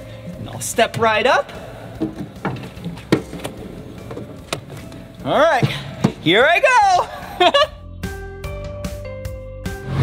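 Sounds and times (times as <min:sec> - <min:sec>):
footsteps on metal steps: 0:00.3 - 0:06.9
knocks and clunks: 0:00.4 - 0:06.6.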